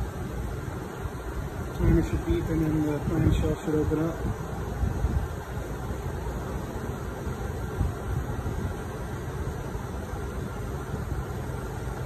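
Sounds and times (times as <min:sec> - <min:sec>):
gas burners rumbling and hissing: 0:00.0 - 0:12.0.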